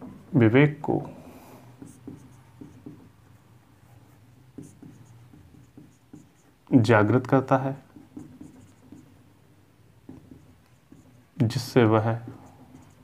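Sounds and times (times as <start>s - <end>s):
marker pen on whiteboard: 0.0s - 13.0s
man talking: 0.3s - 1.2s, 6.7s - 7.9s, 11.4s - 12.4s.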